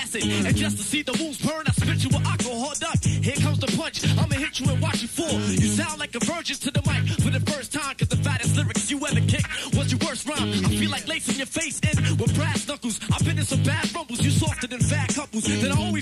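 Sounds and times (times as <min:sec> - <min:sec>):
hip-hop beat: 0:00.0 - 0:16.0
person rapping: 0:00.0 - 0:16.0.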